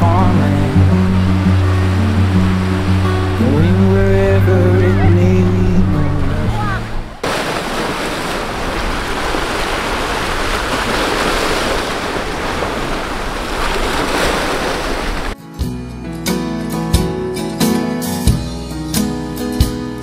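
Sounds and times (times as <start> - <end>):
sea waves washing against rocks: 0.0 - 4.6, 5.3 - 15.4
song with backing music: 0.0 - 6.7, 15.4 - 20.0.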